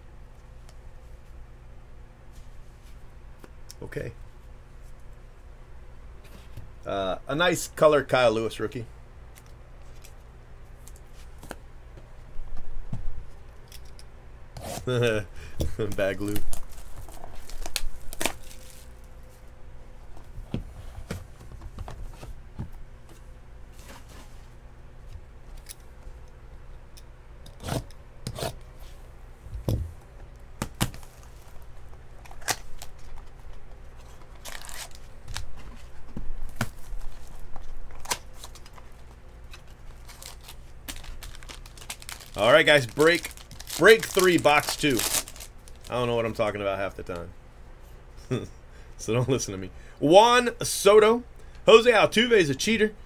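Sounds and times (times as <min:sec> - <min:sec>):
wrapper and cardboard tearing: 0:15.8 - 0:19.0, 0:32.2 - 0:33.3, 0:34.2 - 0:35.6, 0:39.5 - 0:46.0.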